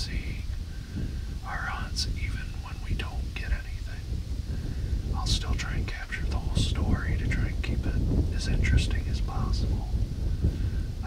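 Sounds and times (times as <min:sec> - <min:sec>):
man whispering: 0:00.0 - 0:10.0
steady low rumble: 0:00.0 - 0:11.0.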